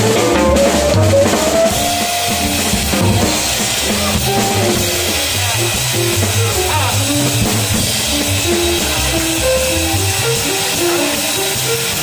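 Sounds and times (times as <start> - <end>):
drums and cymbals with sticks: 0.0 - 12.0
guitar or horn melody: 0.0 - 12.0
walking double bass line: 0.0 - 12.0.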